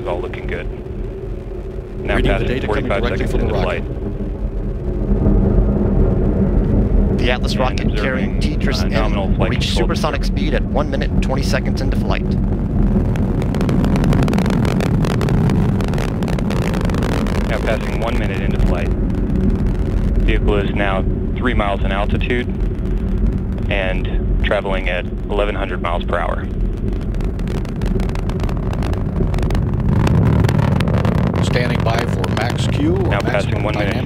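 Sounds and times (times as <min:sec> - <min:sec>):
rocket engine rumbling and crackling: 0:00.0 - 0:34.0.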